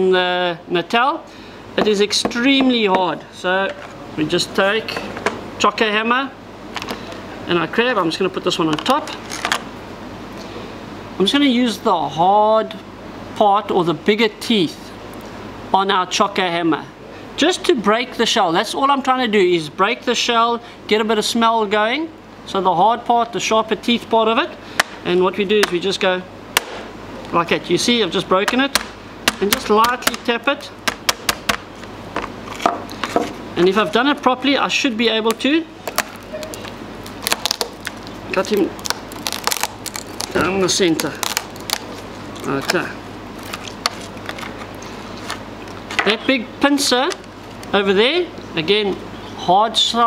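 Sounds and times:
steady room hum: 0:00.0 - 0:50.0
hammer tapping crab shell: 0:01.8 - 0:02.8.

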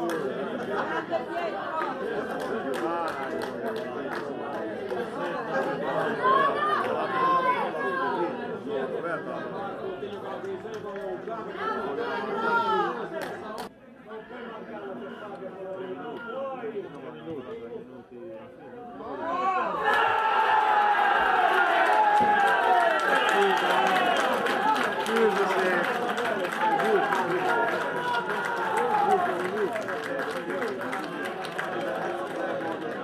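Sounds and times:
crowd shouting and cheering: 0:19.0 - 0:33.0.

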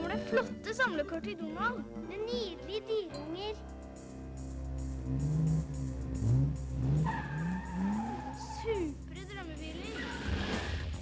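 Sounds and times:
car engine revving: 0:04.0 - 0:11.0
tire squeal: 0:06.8 - 0:08.9.

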